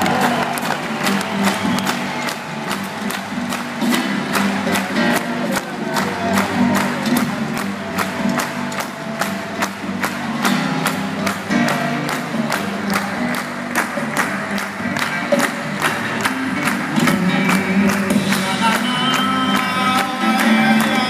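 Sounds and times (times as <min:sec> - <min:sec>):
steady drum beat: 0:00.0 - 0:21.0.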